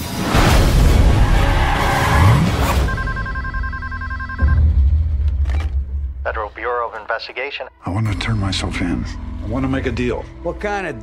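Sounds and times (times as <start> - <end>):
telephone ringing: 2.8 - 4.7.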